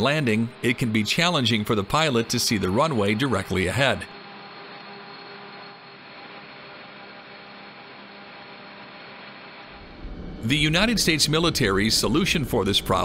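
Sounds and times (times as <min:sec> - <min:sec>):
mechanical hum and hiss: 0:00.0 - 0:13.0.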